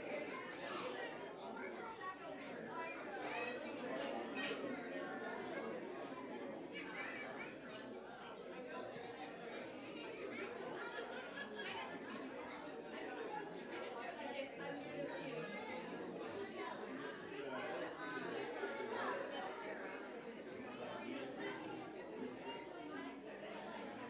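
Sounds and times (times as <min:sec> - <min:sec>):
indistinct chatter of many people: 0:00.0 - 0:24.0.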